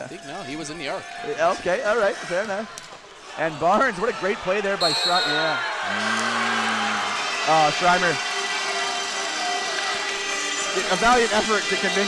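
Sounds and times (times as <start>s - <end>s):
crowd noise in gymnasium: 0.0s - 12.0s.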